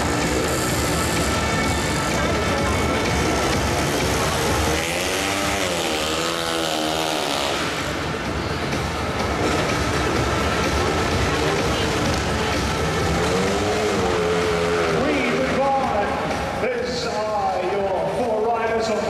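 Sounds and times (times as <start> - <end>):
motorcycle engine revving: 0.0 - 16.6
loud stadium noise: 0.0 - 19.0.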